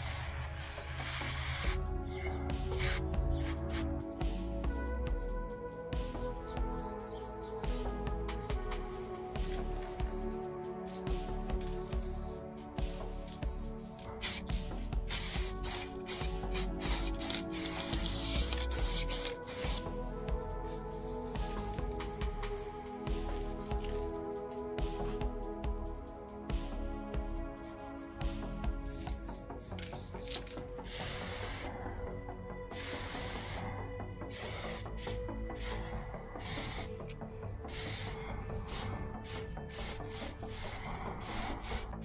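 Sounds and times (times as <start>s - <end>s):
spray paint can hissing: 0.0s - 1.8s, 2.7s - 5.4s, 6.0s - 31.7s, 32.7s - 33.6s, 34.3s - 35.8s, 36.4s - 36.9s, 37.7s - 41.9s
background music: 0.0s - 42.0s.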